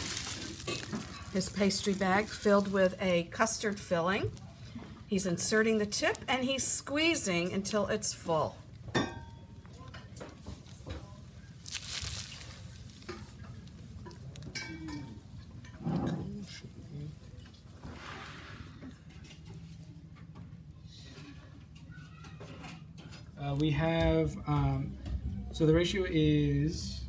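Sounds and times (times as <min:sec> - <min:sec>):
plastic piping bag rustling: 0:00.0 - 0:09.0, 0:09.7 - 0:15.4.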